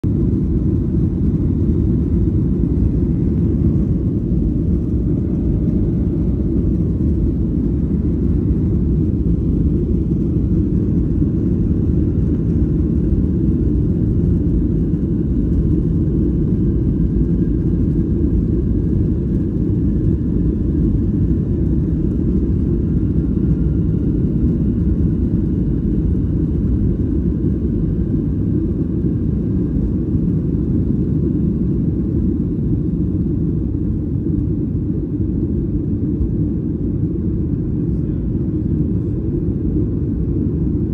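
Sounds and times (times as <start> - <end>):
faint high engine whine: 0.0 - 40.9
jet engine rumble in cabin: 0.0 - 40.9.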